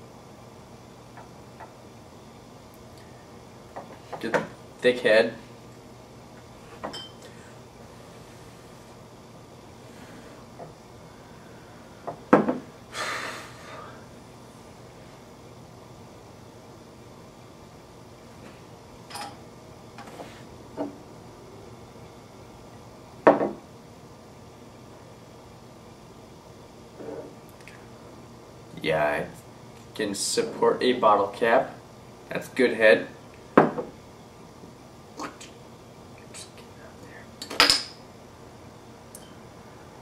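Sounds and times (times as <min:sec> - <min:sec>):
glass clinking: 0:06.9 - 0:07.3, 0:37.4 - 0:38.0
glass knocking on table: 0:12.3 - 0:12.6, 0:23.3 - 0:23.6, 0:33.6 - 0:33.9.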